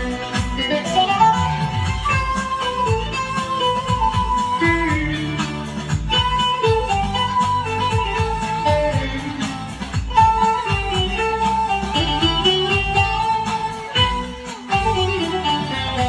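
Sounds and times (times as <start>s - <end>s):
plucked long-necked lute folk melody: 0.0s - 16.0s.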